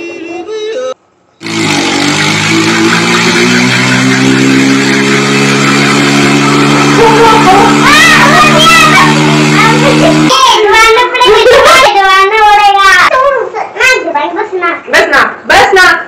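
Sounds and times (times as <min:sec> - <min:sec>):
droning chord with heavy noise: 0:01.4 - 0:10.3
voices: 0:06.9 - 0:16.0.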